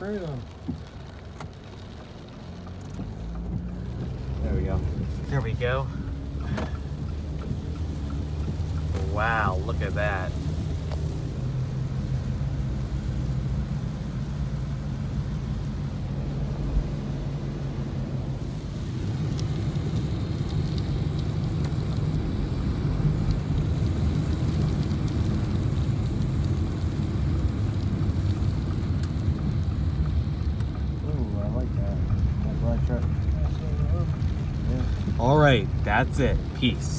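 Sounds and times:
car engine drone: 0.0s - 36.9s
rain on car: 0.0s - 36.9s
tyres on wet road: 0.0s - 36.9s.

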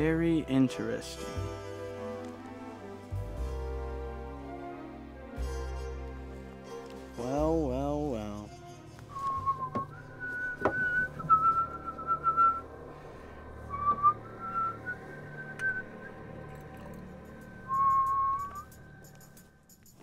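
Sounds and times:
slow whistled tune: 8.5s - 20.0s.

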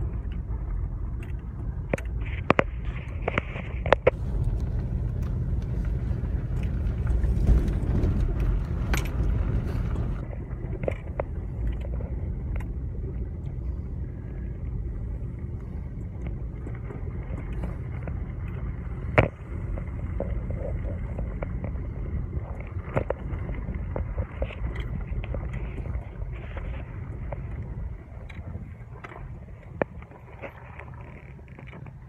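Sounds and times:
vehicle driving on gravel: 0.0s - 32.0s
small rattles and clicks: 0.1s - 12.8s, 16.0s - 32.0s.

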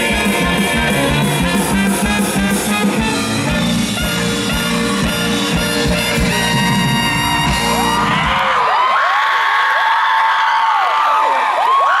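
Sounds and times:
live band final chord with drums: 0.0s - 8.5s
audience cheering: 0.0s - 12.0s.

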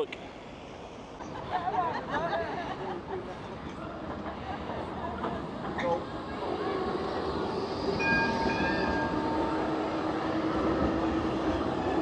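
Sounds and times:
tram rumbling: 0.2s - 12.0s.

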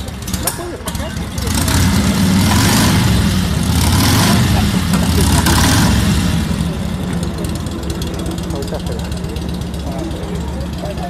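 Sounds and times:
vehicle engine revving: 0.0s - 11.0s.

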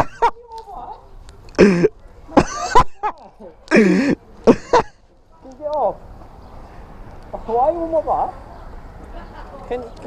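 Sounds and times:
man laughing: 1.6s - 5.0s.

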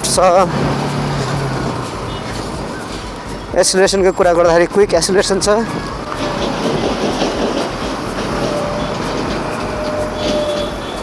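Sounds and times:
motorcycle engine running: 0.0s - 4.6s
wind and road noise: 0.0s - 11.0s.

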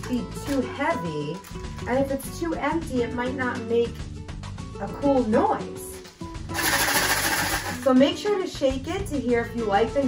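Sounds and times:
plastic bottle maraca rattling: 6.5s - 8.0s.

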